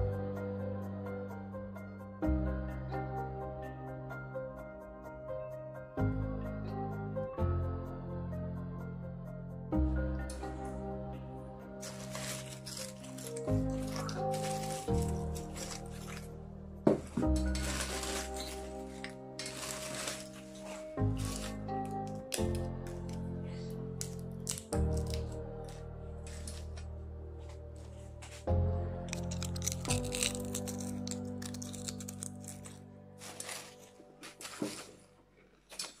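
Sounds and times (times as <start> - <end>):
background music with held chords: 0.0 - 35.4
potato chips crunching in metal bowl: 11.8 - 16.3, 17.4 - 23.2, 24.0 - 26.8, 29.1 - 34.9.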